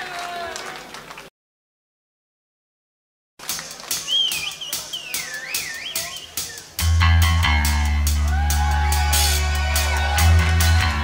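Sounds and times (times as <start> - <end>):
crowd noise: 0.0 - 1.3, 3.4 - 11.0
scattered clapping: 0.0 - 1.3, 3.4 - 6.1
high wavering whistle: 4.0 - 6.7.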